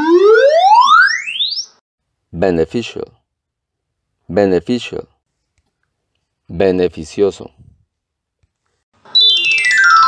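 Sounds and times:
electronic tone sweeping upward: 0:00.0 - 0:01.8, 0:09.1 - 0:10.0.

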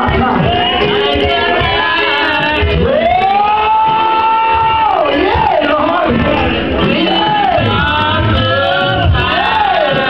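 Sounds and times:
band's low beat: 0:00.0 - 0:10.0.

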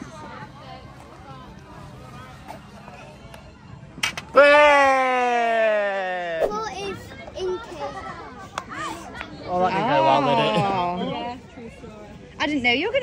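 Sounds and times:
faint chatter: 0:00.0 - 0:13.0.

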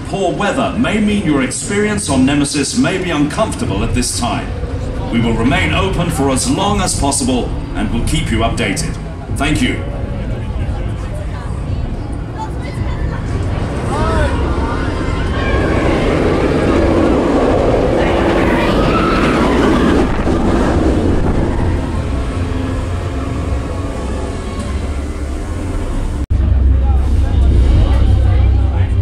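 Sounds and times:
roller coaster rumble: 0:00.0 - 0:29.0
riders screaming: 0:14.2 - 0:25.4.

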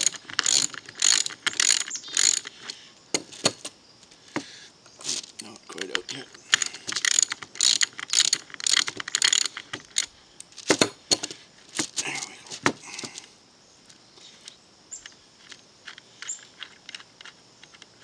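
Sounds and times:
metal bolt clicking and rattling: 0:00.0 - 0:03.7, 0:05.8 - 0:12.0.

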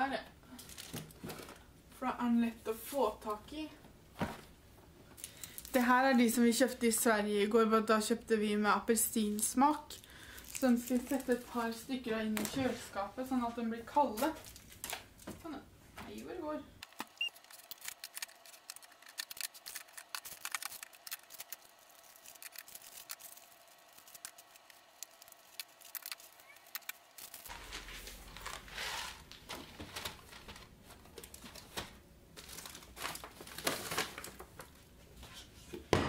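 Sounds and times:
packaging rustling: 0:10.0 - 0:11.8, 0:14.2 - 0:15.3, 0:16.8 - 0:34.9.

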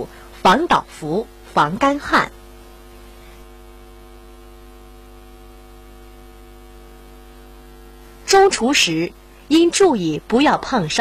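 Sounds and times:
steady electrical hum: 0:00.0 - 0:11.0.

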